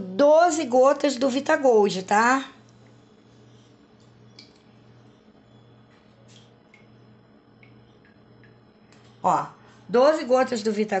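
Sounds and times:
drops plinking into water: 6.4 - 7.0, 7.6 - 8.6.

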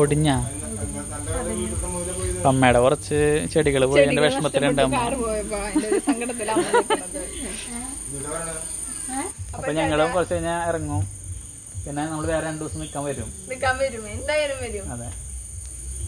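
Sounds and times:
crickets chirring: 0.0 - 16.0
people calling and talking: 0.0 - 16.0.

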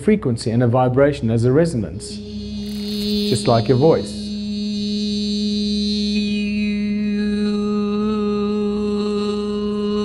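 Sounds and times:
sustained vocal drone: 1.1 - 10.0.

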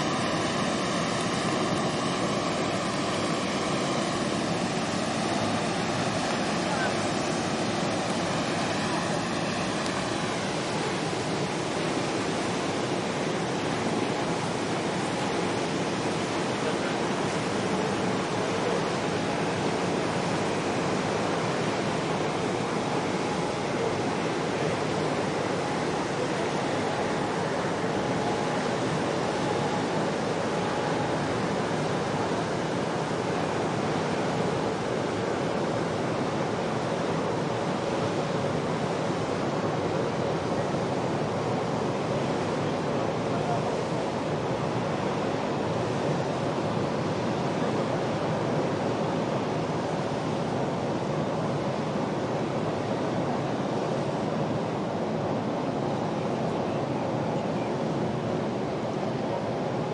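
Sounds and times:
water rushing: 0.0 - 59.9
wind: 0.0 - 59.9.

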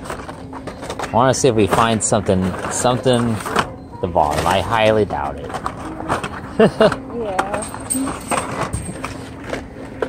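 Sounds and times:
plastic packs clicking and rustling: 0.0 - 10.0
person laughing: 6.5 - 7.2.

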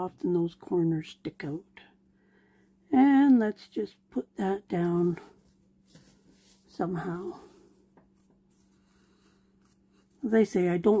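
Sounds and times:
rustling of paper and cardboard: 4.8 - 11.0.

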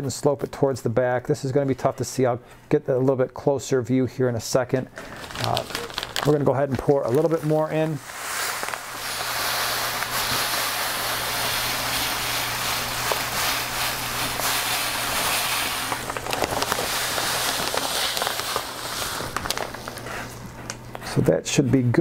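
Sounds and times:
sand pouring: 5.2 - 20.1.

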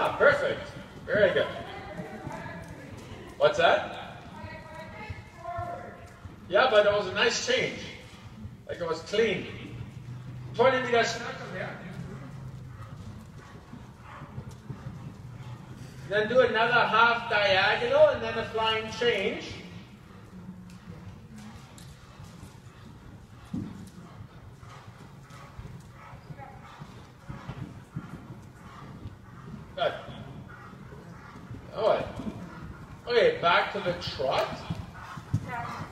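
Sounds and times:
horse hoofbeats on dirt: 0.0 - 35.9.

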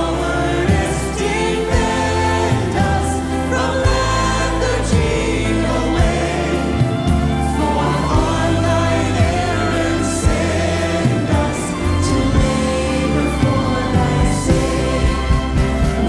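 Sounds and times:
electric bass: 0.0 - 16.0
people singing: 0.0 - 16.0
piano chords: 0.0 - 16.0.

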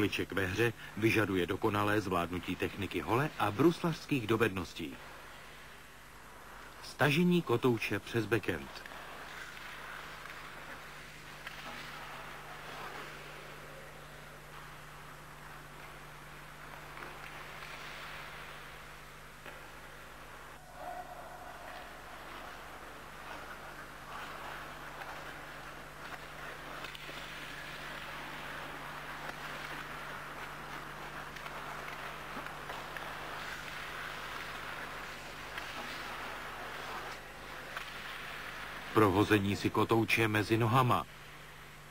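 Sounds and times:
low electrical hum: 0.0 - 41.9
skates scraping on ice: 8.6 - 20.4, 21.7 - 39.3
stick hitting puck clicks: 8.8 - 13.2, 16.8 - 18.5, 23.4 - 38.5.

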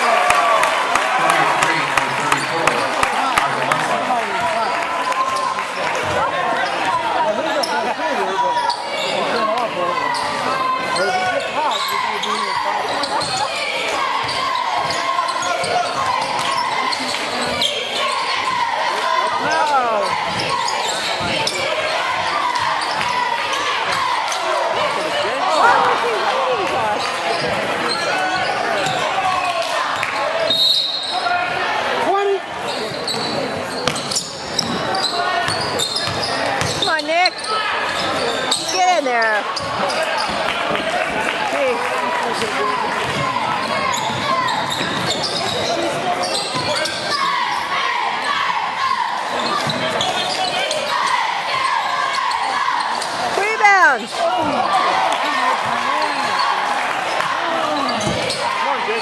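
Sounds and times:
spectators chattering: 0.0 - 59.0
basketball bouncing on court: 33.2 - 37.4, 43.0 - 45.7.

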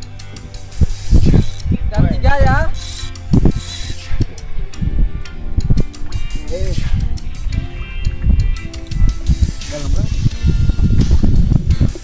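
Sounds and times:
fishing reel ratcheting clicks: 1.0 - 1.7, 2.7 - 4.2.

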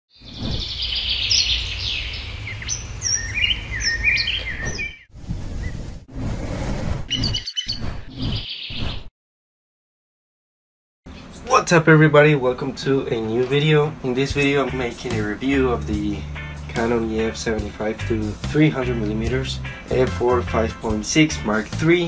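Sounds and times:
birds singing and chirping: 0.1 - 5.8, 7.1 - 9.1, 12.9 - 17.6, 18.2 - 19.6.

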